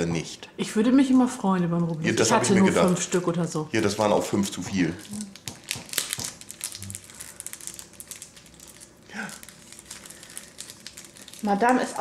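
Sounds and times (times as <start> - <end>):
lottery ticket crinkling: 4.7 - 12.0.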